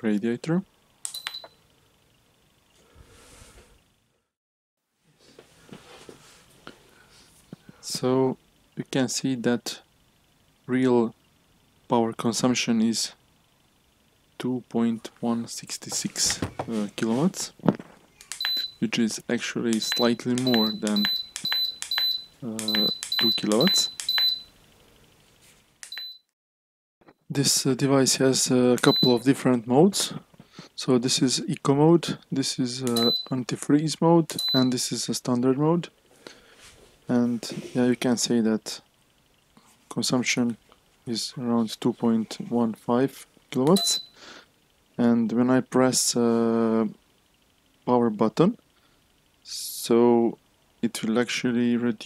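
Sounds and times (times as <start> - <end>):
sharp click: 1.0 - 1.6, 18.2 - 18.7, 19.7 - 24.4, 25.8 - 26.2, 32.8 - 33.3, 34.3 - 34.6
short high electronic beep: 18.4 - 18.8, 19.8 - 24.5, 25.9 - 26.2.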